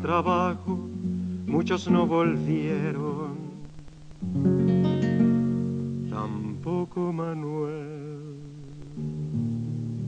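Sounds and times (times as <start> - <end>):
acoustic guitar chord strummed: 0.0 - 10.0.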